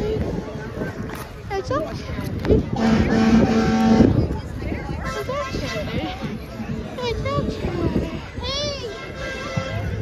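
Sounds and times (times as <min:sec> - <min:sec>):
voices: 0:00.0 - 0:10.0
vehicle horn: 0:02.8 - 0:04.2.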